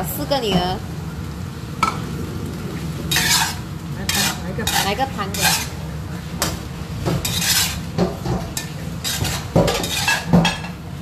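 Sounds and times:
metal spatula scraping a wok: 3.1s - 5.9s, 7.1s - 10.8s.

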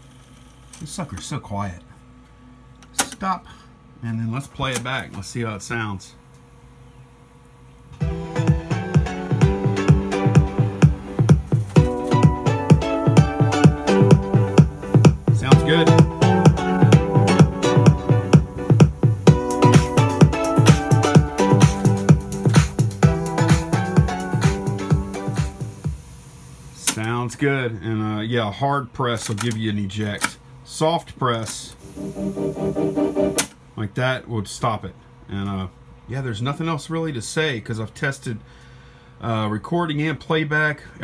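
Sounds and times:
tape hiss: 6.2s - 27.4s, 31.7s - 33.6s
music with steady beat: 8.0s - 26.1s, 31.8s - 33.5s.

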